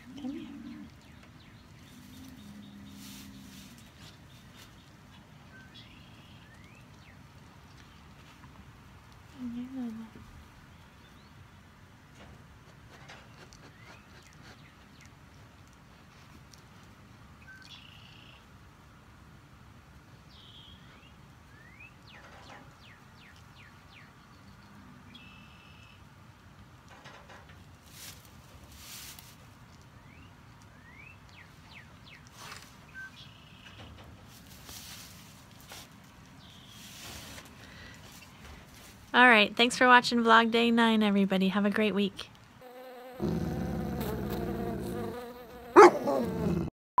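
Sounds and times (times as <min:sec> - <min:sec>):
faint birdsong: 0:00.0 - 0:08.2, 0:17.4 - 0:18.5, 0:20.1 - 0:26.1, 0:29.7 - 0:38.8
bee buzzing: 0:42.6 - 0:46.4
dog bark: 0:45.8 - 0:46.3.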